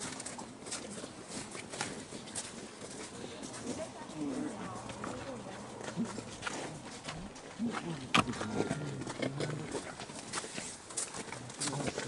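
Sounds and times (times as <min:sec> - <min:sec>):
people talking quietly: 0:00.0 - 0:12.0.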